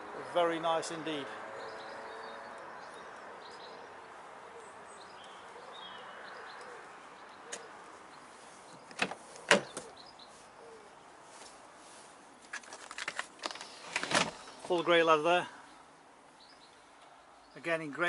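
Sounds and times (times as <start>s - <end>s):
faint outdoor hiss: 0.0s - 18.0s
bird chirps: 1.5s - 11.1s, 15.6s - 17.7s
car door handle and latch clicks: 8.9s - 9.9s.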